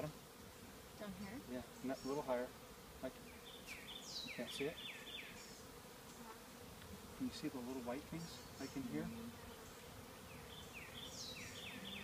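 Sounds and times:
honeybees humming: 0.0s - 12.0s.

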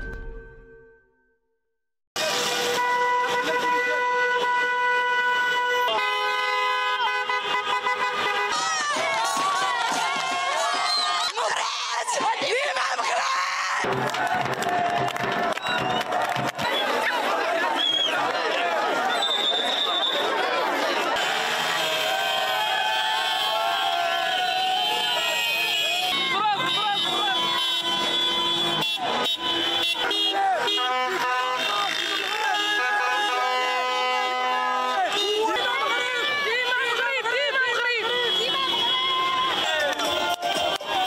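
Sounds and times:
vehicle horns honking: 2.2s - 8.9s, 21.0s - 41.0s
crowd shouting and chanting: 5.0s - 41.0s.

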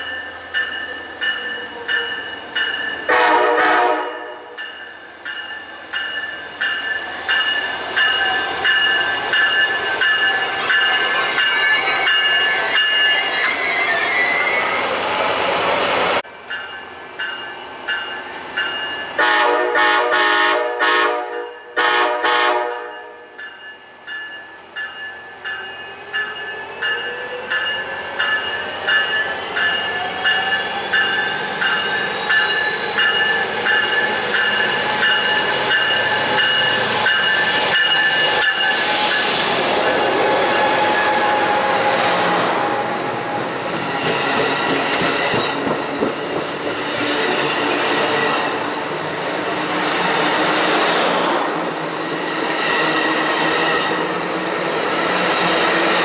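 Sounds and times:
train bell ringing: 0.0s - 14.2s, 16.3s - 19.3s, 21.4s - 21.9s, 22.7s - 40.8s
train whine: 0.0s - 56.0s
train cars rumbling past: 24.8s - 56.0s.

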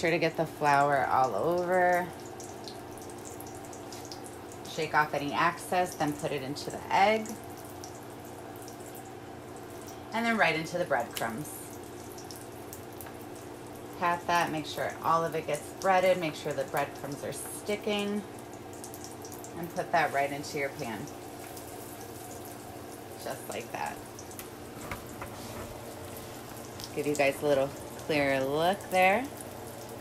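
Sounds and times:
cutlet sizzling in oil: 0.5s - 30.0s.

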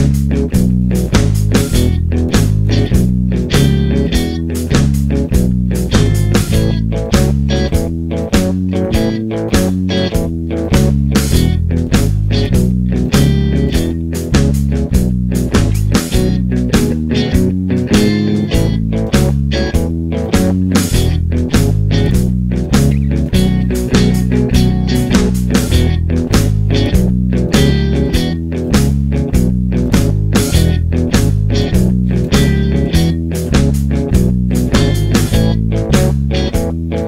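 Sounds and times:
backing rhythm track: 0.0s - 37.0s
electric bass blues line: 0.0s - 37.0s.

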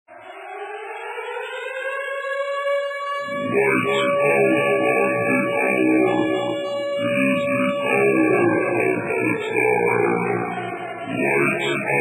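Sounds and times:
steady synthesizer tone: 3.2s - 12.0s.

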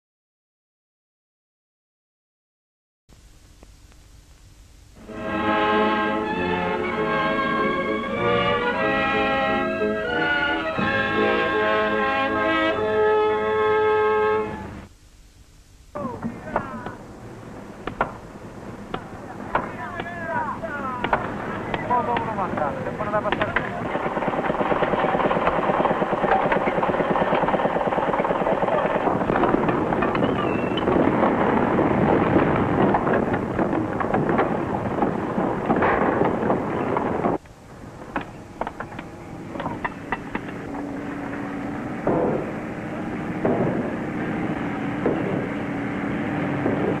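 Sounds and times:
steady hiss: 3.1s - 23.9s
machine humming: 3.2s - 47.0s
machinery engine chugging: 18.9s - 35.4s.

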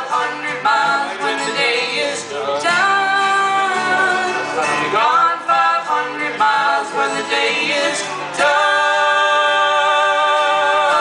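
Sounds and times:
man and woman singing in harmony: 0.0s - 11.0s.

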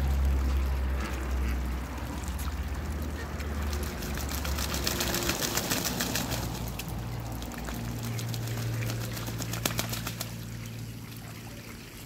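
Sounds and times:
duck splashing water: 0.0s - 12.0s.

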